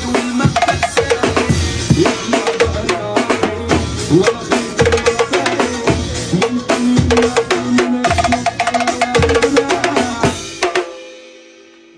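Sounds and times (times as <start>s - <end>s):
acoustic drum kit playing: 0.0s - 11.7s
backing track music: 0.0s - 11.9s.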